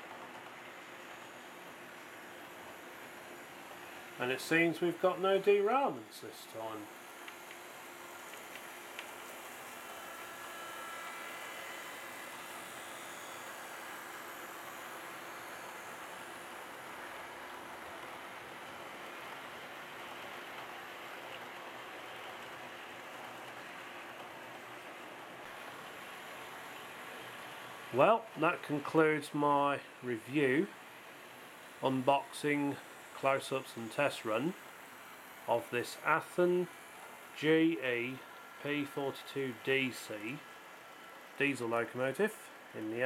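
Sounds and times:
faint electric motor whine: 0.0 - 43.0
model train wheels rolling on rails: 0.0 - 43.0.

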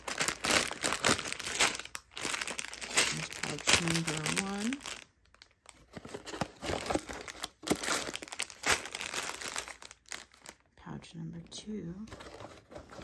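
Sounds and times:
plastic pouches crinkling: 0.0 - 10.7.

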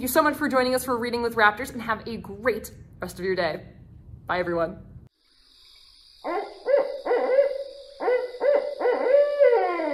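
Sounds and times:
owl hooting: 6.2 - 9.9.

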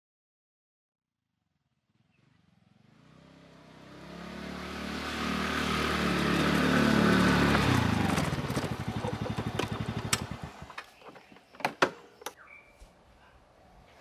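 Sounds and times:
motor scooter engine: 2.5 - 11.4.

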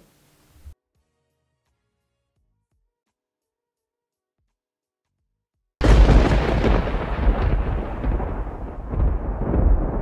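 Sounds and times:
loud deep rumbling: 5.8 - 10.0.

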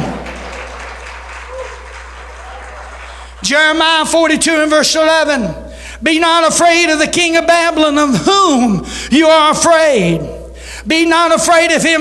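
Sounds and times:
congregation applauding: 0.0 - 4.1.

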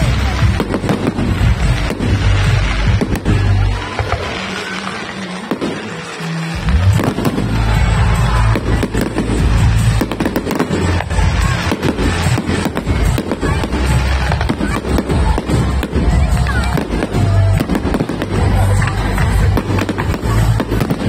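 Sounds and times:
fireworks bangs and crackles: 0.0 - 21.0
music playing: 0.0 - 21.0.

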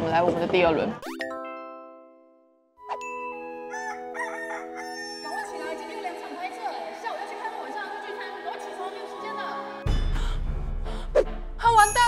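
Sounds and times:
rooster crowing: 3.7 - 5.6.

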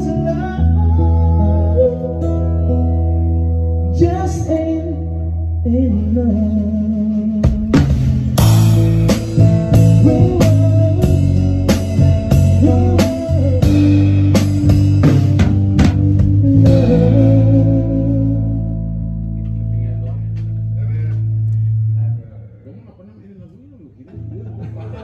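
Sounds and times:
drum hits: 7.6 - 16.4
band chords ringing: 8.0 - 22.1.

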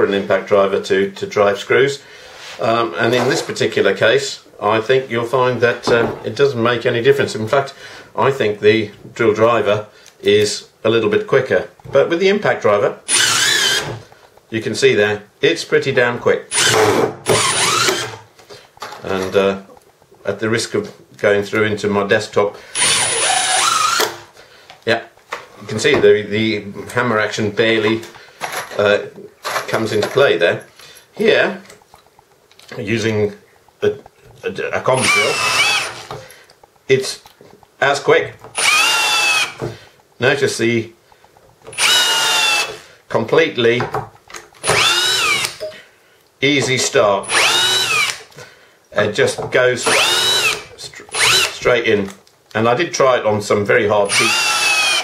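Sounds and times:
cordless drill whine: 13.1 - 14.0, 16.5 - 18.2, 22.8 - 24.3, 35.0 - 36.2, 38.6 - 39.6, 41.7 - 42.8, 44.6 - 45.6, 47.2 - 48.2, 49.8 - 51.6, 54.0 - 55.0
impact driver driving screw: 13.1 - 14.0, 16.5 - 18.2, 22.8 - 24.2, 35.0 - 36.2, 38.5 - 39.6, 41.7 - 42.8, 44.6 - 45.6, 47.2 - 48.2, 49.8 - 51.6, 54.1 - 55.0.

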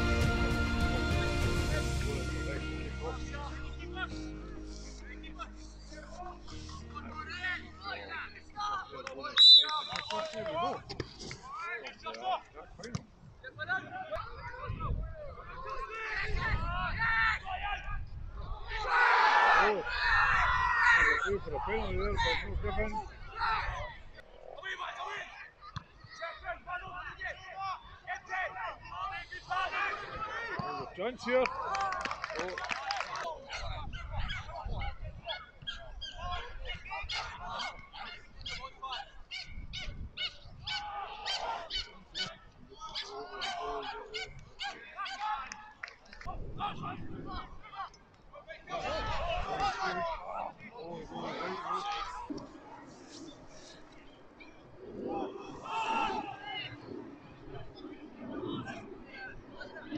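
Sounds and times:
referee whistle blast: 9.4 - 10.2
people calling out: 40.2 - 45.6, 55.1 - 56.8.

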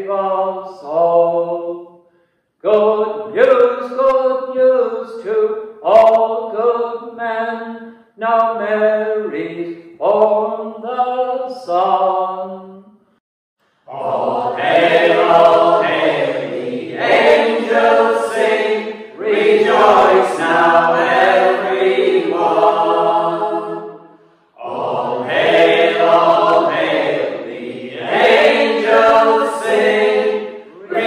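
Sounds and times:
group singing a carol unaccompanied: 0.0 - 1.9, 13.9 - 31.0.

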